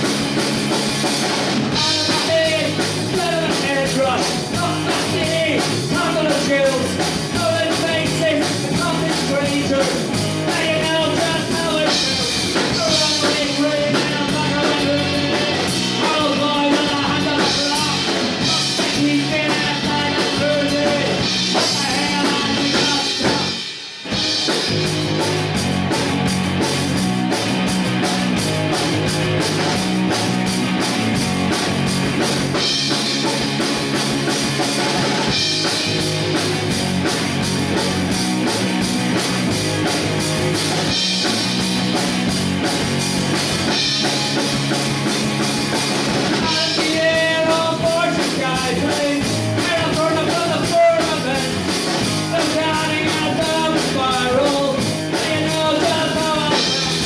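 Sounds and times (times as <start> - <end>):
live rock band playing: 0.0 - 57.0.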